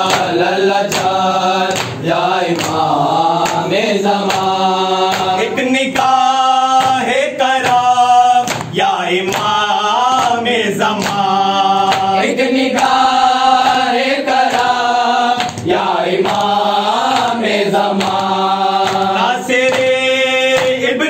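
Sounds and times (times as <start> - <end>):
men chanting in unison: 0.0 - 21.0
hands beating on chests: 6.8 - 9.6.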